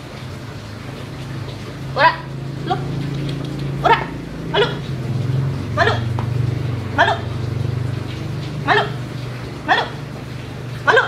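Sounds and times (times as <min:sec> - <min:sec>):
dog barking: 0:03.8 - 0:04.9, 0:05.8 - 0:06.1, 0:08.7 - 0:09.0, 0:09.7 - 0:10.0.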